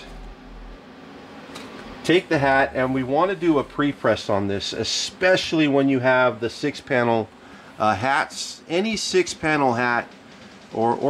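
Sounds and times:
low hum: 0.0s - 5.2s.

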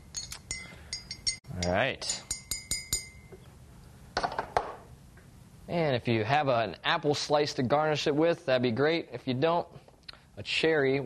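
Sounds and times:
glass mug ringing: 0.0s - 3.4s.

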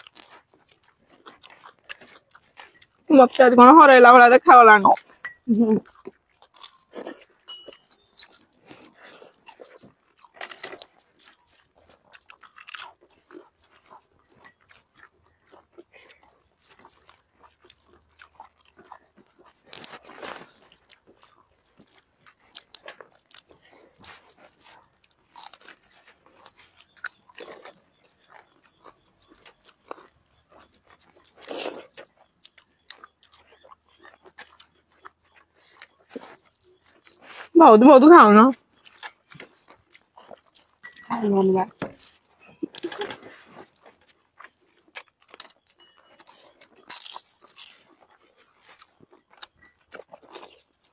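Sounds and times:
people eating and chewing: 0.0s - 50.9s.

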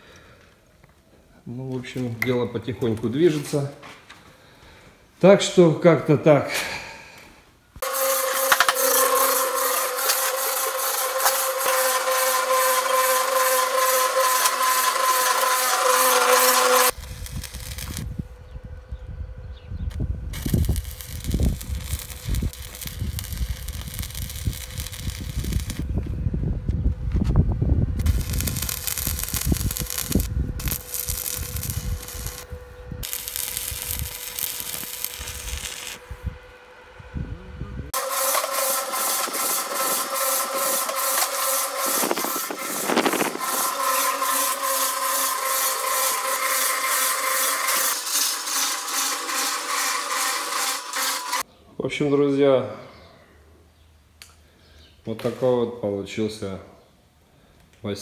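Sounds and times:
concrete mixer running: 7.8s - 18.1s, 38.0s - 51.4s
crackling welding arc: 7.8s - 18.2s, 19.9s - 25.9s, 28.0s - 36.2s, 37.9s - 51.5s.

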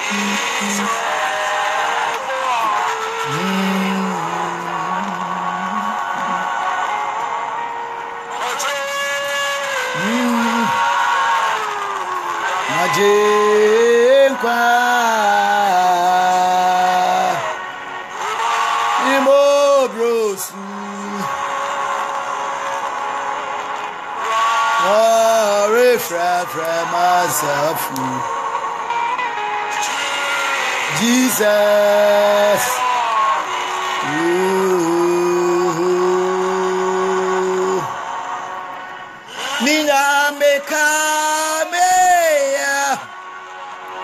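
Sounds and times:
man singing gospel: 0.0s - 7.4s, 8.3s - 23.2s, 24.2s - 28.4s, 29.8s - 38.3s, 39.3s - 43.2s
backing music: 0.0s - 44.0s.

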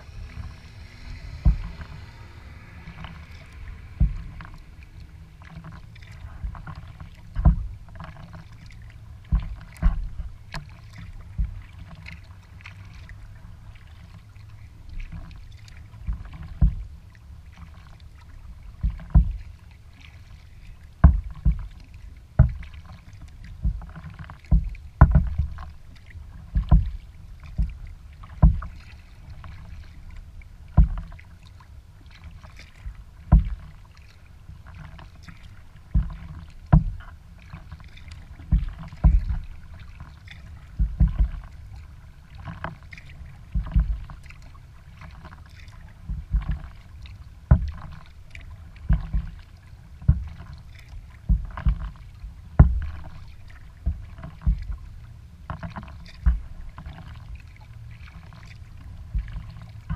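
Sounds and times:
kayak paddle splashes: 0.0s - 59.9s
steady low rumble: 0.0s - 59.9s.

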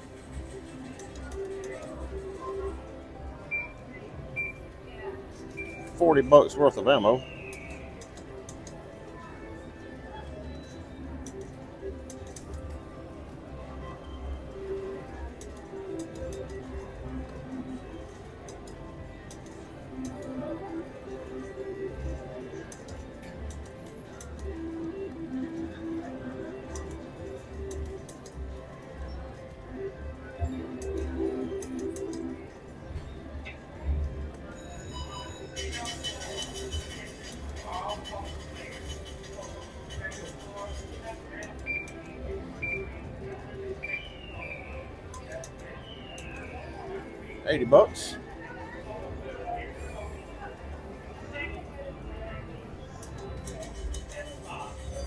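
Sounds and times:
background music: 0.0s - 55.0s
chatter of players: 33.4s - 55.0s
slot machine reels clicking: 34.3s - 44.0s, 52.9s - 55.0s.

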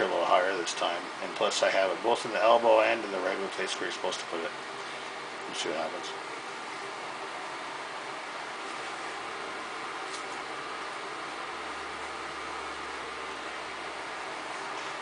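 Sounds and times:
steady room hiss: 0.0s - 15.0s.

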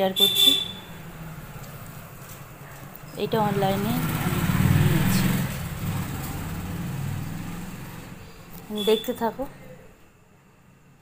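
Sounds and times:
vehicle engine passing: 0.0s - 8.7s.

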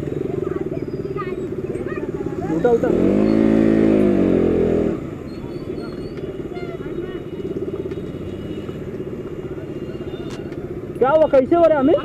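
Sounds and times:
motorcycle engine running: 0.0s - 11.8s.

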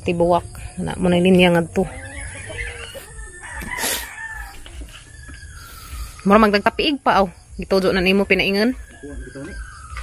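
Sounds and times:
rooster crowing: 1.8s - 6.2s, 8.4s - 10.0s.

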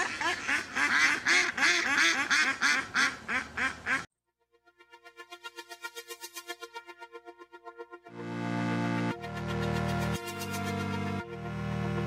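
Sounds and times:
duck quacking rapidly: 0.0s - 4.1s.

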